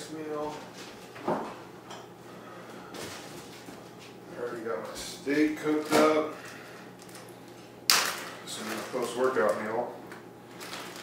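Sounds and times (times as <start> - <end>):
man talking: 4.3 - 6.4, 8.5 - 10.0.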